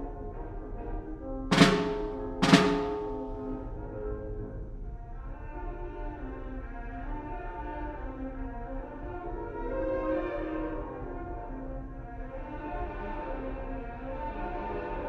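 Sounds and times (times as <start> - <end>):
concert band music: 1.5 - 3.7.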